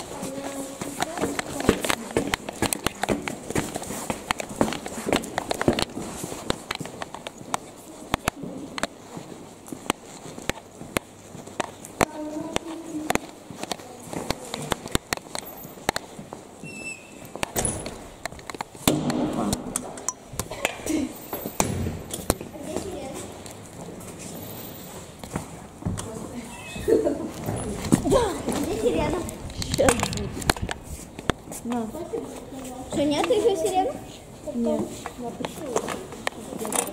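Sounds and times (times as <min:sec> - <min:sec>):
people talking: 0:00.0 - 0:02.5, 0:12.0 - 0:14.9, 0:22.4 - 0:23.4, 0:25.9 - 0:30.5, 0:31.6 - 0:36.9
footsteps on tiled floor: 0:00.0 - 0:36.9
sharp clicks and knocks: 0:17.4 - 0:20.8.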